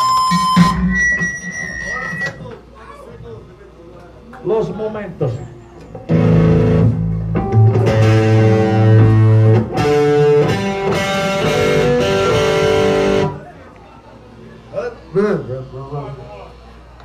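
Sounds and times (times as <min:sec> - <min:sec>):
punk band playing: 0:00.0 - 0:02.5, 0:06.0 - 0:13.5.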